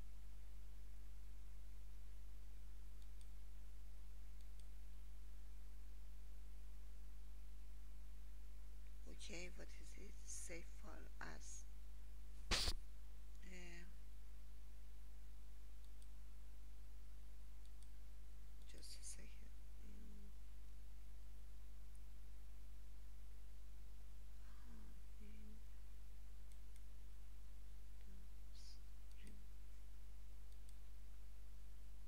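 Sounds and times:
low electrical hum: 0:00.0 - 0:32.0
computer mouse clicks: 0:03.0 - 0:03.4, 0:15.8 - 0:16.2, 0:17.6 - 0:18.0, 0:26.4 - 0:26.9, 0:30.5 - 0:30.9.

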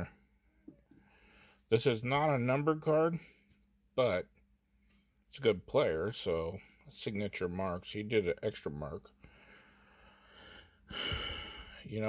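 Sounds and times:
soft breath: 0:00.1 - 0:01.7, 0:09.2 - 0:11.9.

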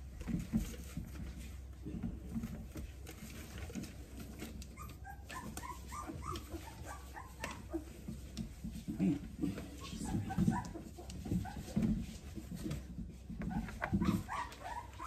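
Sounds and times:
puppies whimpering: 0:03.7 - 0:08.4, 0:09.5 - 0:12.2, 0:13.4 - 0:15.0.

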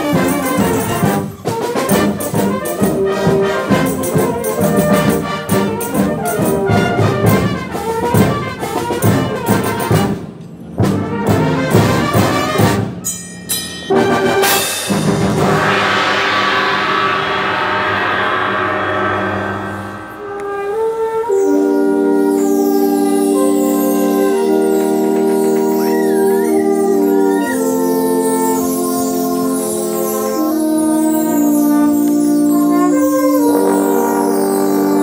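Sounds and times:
brass band playing: 0:00.0 - 0:13.0, 0:13.9 - 0:35.0
cymbal crash: 0:13.6 - 0:21.7.

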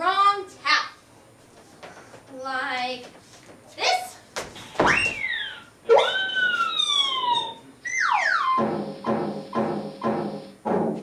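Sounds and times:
drum-like beats: 0:08.5 - 0:11.0.

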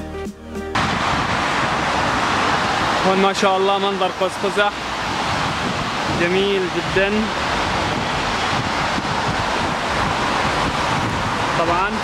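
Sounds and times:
tyres hissing on wet road: 0:00.8 - 0:12.0.

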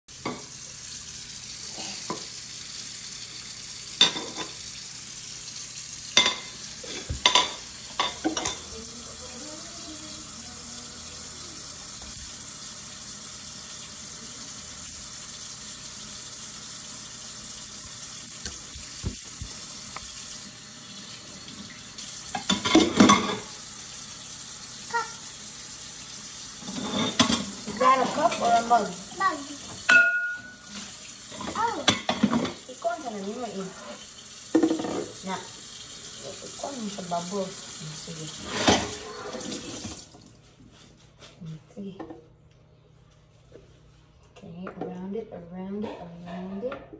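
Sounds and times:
faucet running into sink: 0:00.1 - 0:40.3
dishes clattering: 0:04.0 - 0:04.6, 0:06.2 - 0:08.7, 0:22.3 - 0:23.5, 0:26.6 - 0:28.8, 0:29.8 - 0:32.7, 0:34.5 - 0:35.2, 0:38.4 - 0:39.5.

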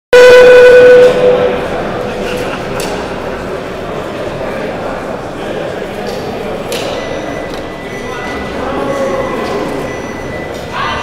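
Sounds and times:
loud electronic beep echoing: 0:00.1 - 0:02.1, 0:06.7 - 0:11.0.

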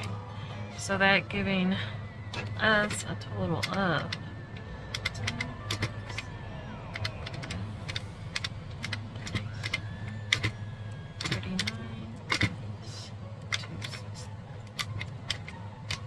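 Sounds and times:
steady low hum: 0:00.0 - 0:16.0
calculator keys clicking: 0:02.4 - 0:12.6, 0:13.4 - 0:16.0.

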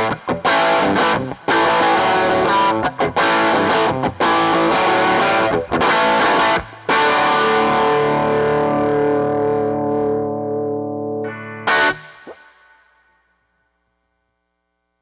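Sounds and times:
overdriven electric guitar chords: 0:00.0 - 0:13.4.

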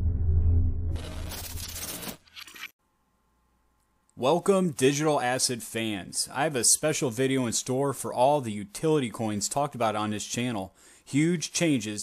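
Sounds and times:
low rumble: 0:00.0 - 0:01.4.

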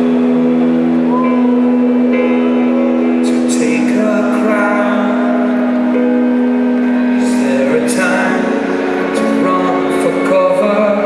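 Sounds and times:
rock band holding drone note: 0:00.0 - 0:11.0.

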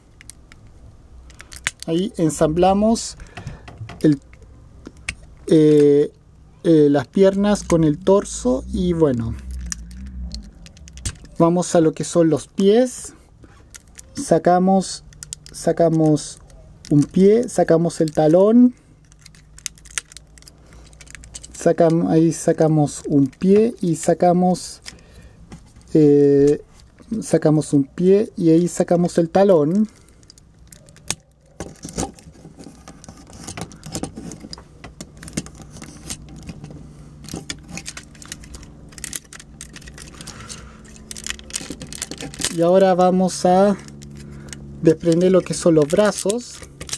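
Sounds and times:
steady low hum: 0:00.0 - 0:21.6, 0:22.2 - 0:46.9.

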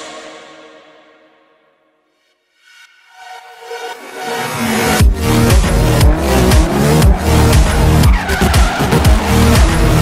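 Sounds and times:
electronic music with steady beat: 0:02.6 - 0:10.0
car tyres squealing: 0:04.0 - 0:10.0
car engine running: 0:04.6 - 0:10.0.

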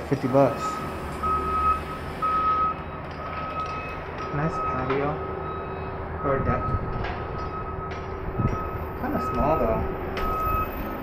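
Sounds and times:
vehicle back-up alarm beeping: 0:00.0 - 0:11.0.

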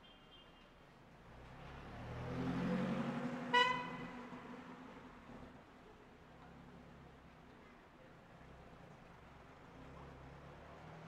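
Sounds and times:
car driving past: 0:01.6 - 0:03.5
car horn beep: 0:03.5 - 0:03.9.

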